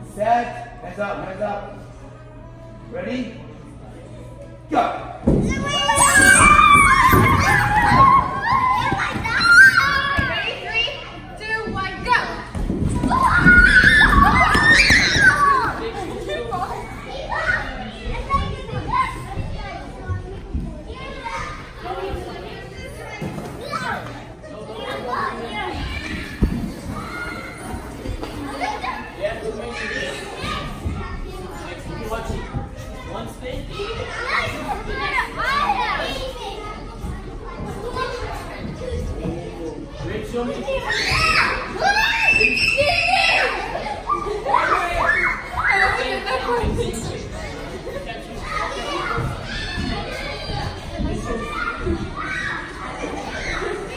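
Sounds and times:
children shouting and chattering: 3.5s - 53.9s.

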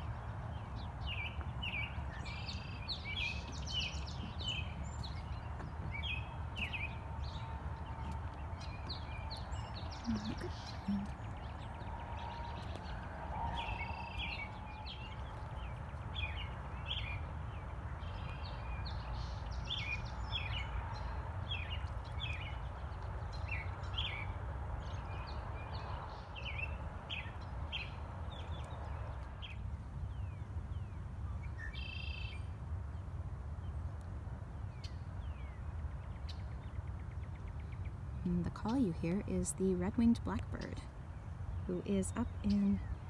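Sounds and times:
steady low rumble: 0.0s - 31.4s
buzzy blackbird song: 0.0s - 33.8s, 34.6s - 43.0s
songbirds chirping: 0.0s - 43.0s.

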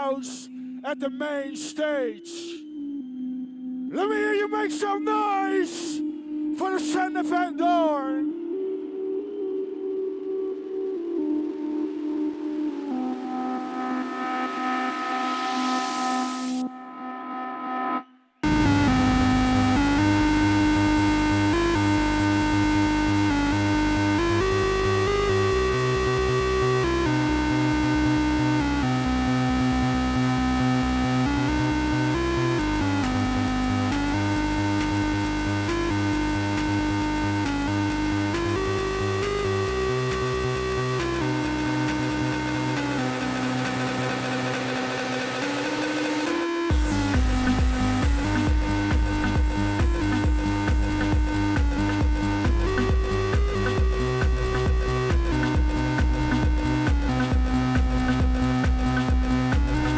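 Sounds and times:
dance track bass and beat: 6.6s - 8.2s, 18.4s - 59.9s
melodic synth breakdown: 17.9s - 59.9s.

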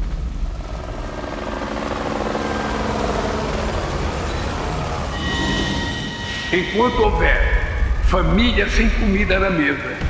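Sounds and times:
deep rumbling drone: 0.0s - 10.0s
sustained held tones: 2.0s - 8.8s.

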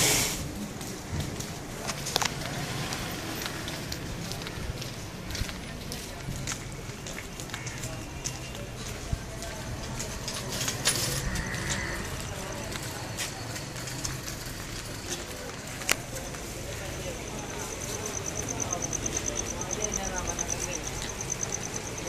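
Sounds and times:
faint indistinct voices: 0.1s - 22.0s
footsteps on dirt path: 0.7s - 22.0s.

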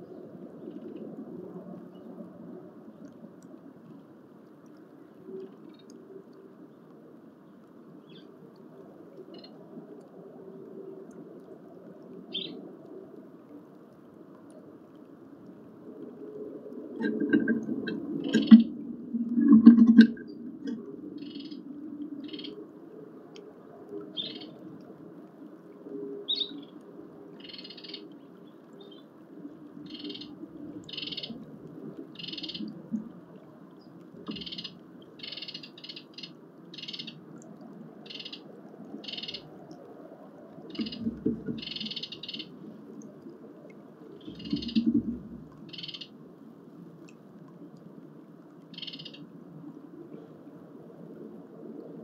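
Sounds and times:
birds low calls: 17.0s - 18.8s, 40.7s - 42.5s, 44.2s - 46.1s.

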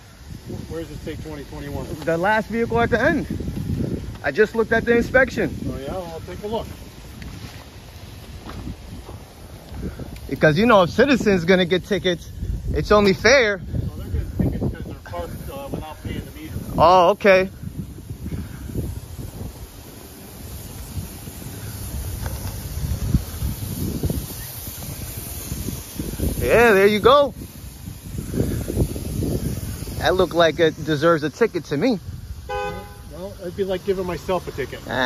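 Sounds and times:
faint street noise: 0.0s - 35.0s
wind buffeting microphone: 0.0s - 35.0s.

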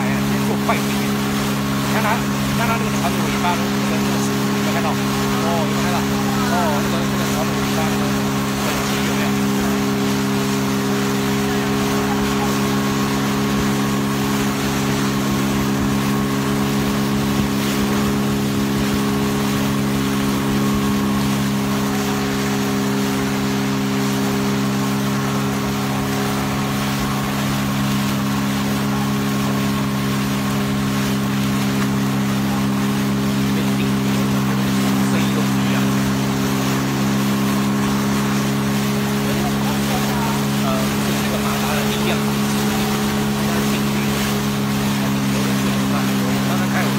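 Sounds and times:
outboard motor running: 0.0s - 46.9s
rushing water hiss: 0.0s - 46.9s.

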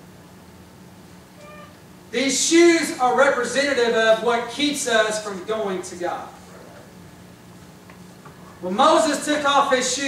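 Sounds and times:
steady low hum: 0.0s - 10.0s
faint high-pitched squeak: 1.4s - 1.8s.

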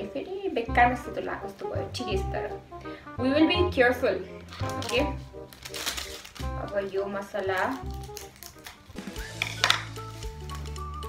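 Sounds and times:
background music with low notes: 0.0s - 11.0s
scissors snipping plastic: 4.5s - 10.8s.

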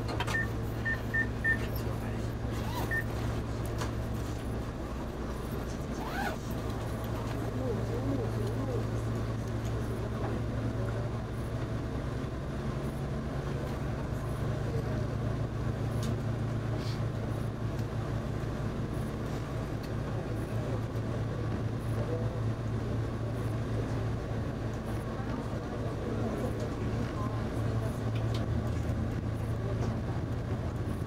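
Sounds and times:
diesel railcar engine hum: 0.0s - 31.0s.

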